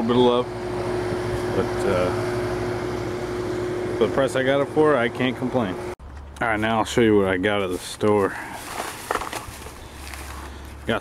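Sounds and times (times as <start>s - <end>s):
plastic bag rustling: 7.6s - 11.0s.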